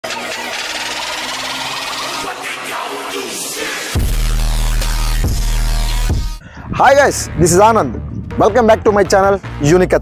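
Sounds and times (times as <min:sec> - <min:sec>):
rapidly pulsing electronic buzz: 0:00.1 - 0:06.4.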